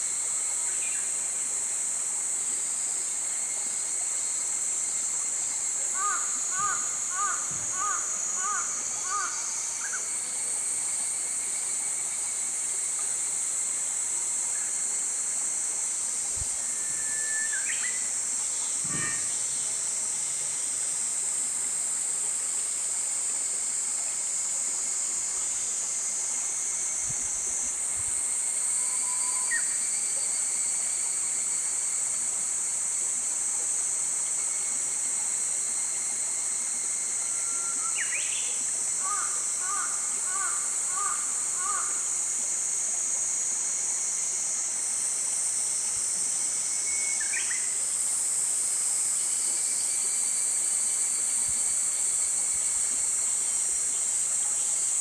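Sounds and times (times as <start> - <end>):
high-pitched insect chorus: 0.0 - 55.0.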